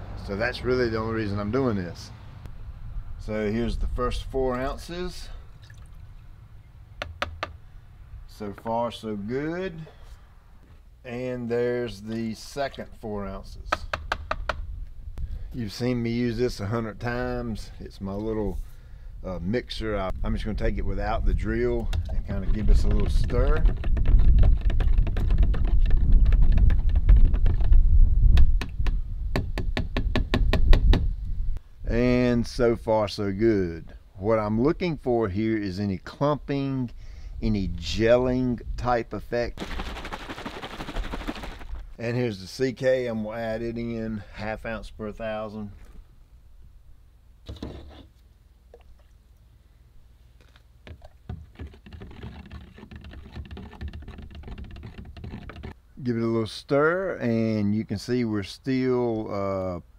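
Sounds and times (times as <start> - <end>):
low rumble: 2.2 - 4.3
paddle knocking against plastic jug: 7.0 - 7.6, 13.7 - 14.6, 21.9 - 27.8, 50.8 - 55.7.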